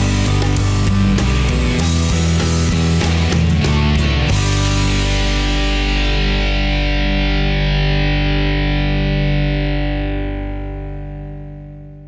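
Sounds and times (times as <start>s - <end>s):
distorted guitar chord: 0.0s - 12.0s.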